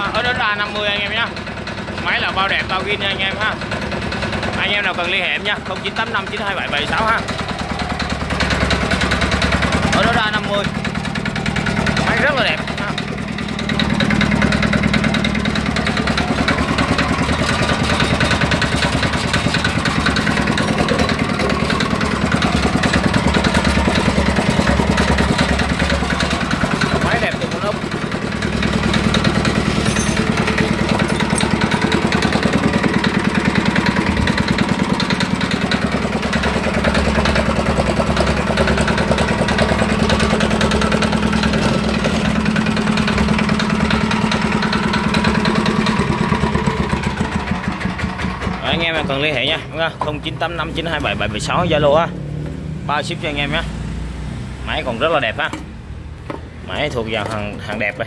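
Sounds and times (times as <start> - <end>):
small diesel engine running: 0.0 - 58.0.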